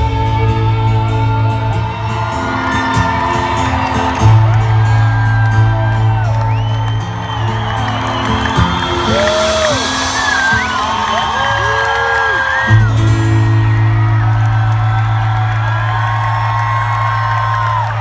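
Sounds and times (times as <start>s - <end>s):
crowd whooping and cheering: 0.1s - 18.0s.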